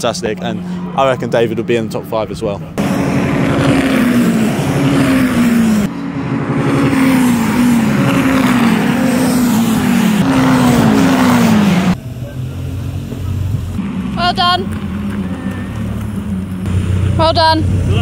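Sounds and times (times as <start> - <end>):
low engine rumble: 0.0 - 18.0
race cars passing at speed: 0.1 - 18.0.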